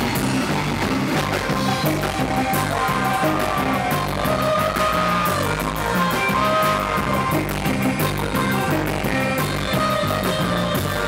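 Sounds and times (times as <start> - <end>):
bass guitar line: 0.0 - 11.0
drum kit beat: 0.0 - 11.0
held lead guitar melody: 0.0 - 11.0.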